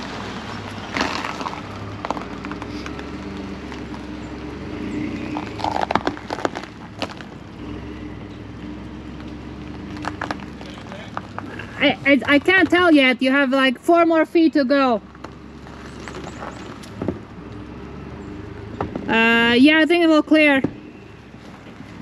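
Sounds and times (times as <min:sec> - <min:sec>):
pickup truck engine under load: 0:00.0 - 0:22.0.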